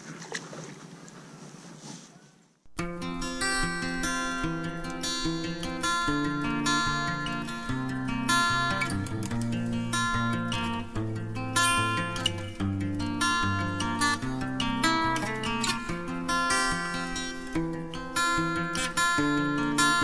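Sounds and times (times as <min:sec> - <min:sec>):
strummed acoustic guitar: 0:02.7 - 0:20.0.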